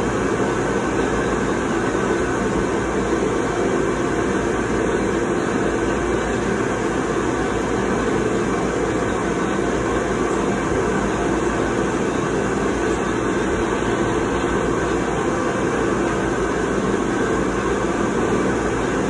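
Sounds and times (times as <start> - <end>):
blower rushing air: 0.0 - 19.0
faint hum: 0.0 - 19.0.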